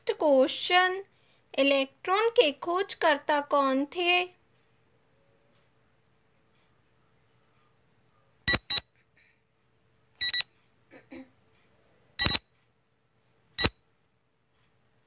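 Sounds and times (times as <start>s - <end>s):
electronic alarm beeps: 8.5s - 8.8s, 10.2s - 10.5s, 12.2s - 12.4s.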